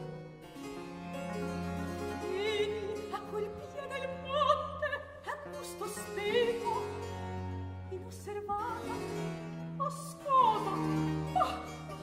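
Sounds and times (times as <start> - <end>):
harpsichord: 0.0 - 4.3.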